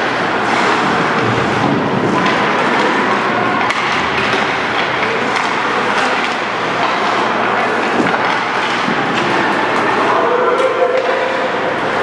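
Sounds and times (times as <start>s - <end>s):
skates scraping ice: 0.0s - 10.2s
arena noise: 0.0s - 12.0s
hockey sticks and puck clacking: 0.0s - 12.0s.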